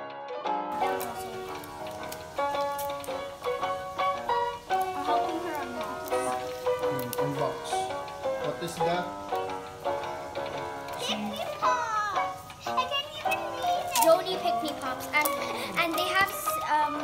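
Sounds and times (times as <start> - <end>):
plucked background music: 0.0 - 17.0
faint voices: 4.5 - 9.2.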